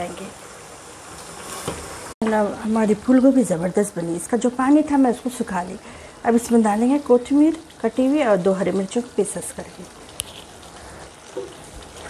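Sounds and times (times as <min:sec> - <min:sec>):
curry sizzling in a pan: 0:00.0 - 0:12.0.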